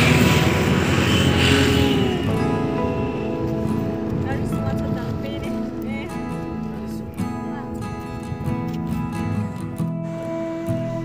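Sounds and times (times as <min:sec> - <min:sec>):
road vehicle passing close by: 0:00.0 - 0:06.8.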